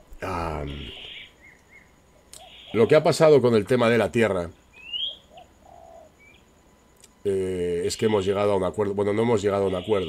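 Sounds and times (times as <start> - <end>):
faint low coo: 0.2 - 1.1
bird chirping: 0.4 - 7.1, 9.3 - 10.0.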